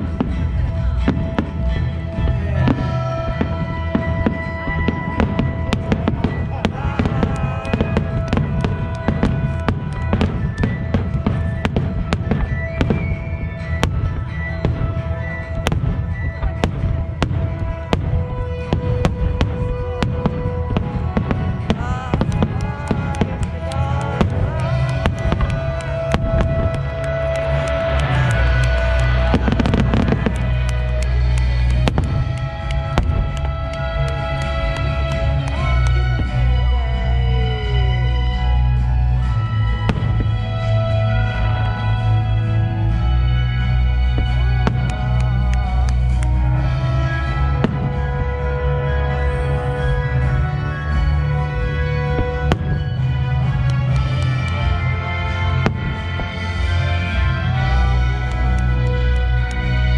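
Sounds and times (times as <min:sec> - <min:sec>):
music playing: 0:00.0 - 0:59.9.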